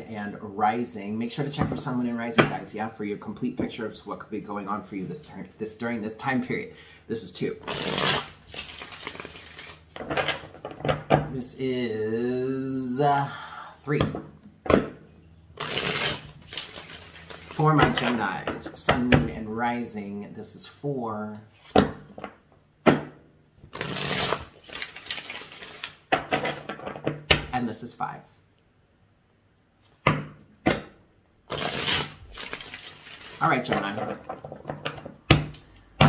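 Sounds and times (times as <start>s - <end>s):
cards shuffling: 7.6s - 11.0s, 15.6s - 18.7s, 23.6s - 27.1s, 31.5s - 34.6s.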